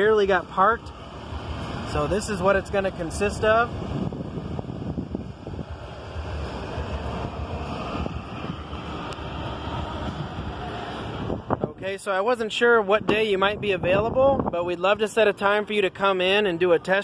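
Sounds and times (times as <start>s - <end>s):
rush of air noise: 0.0s - 17.0s.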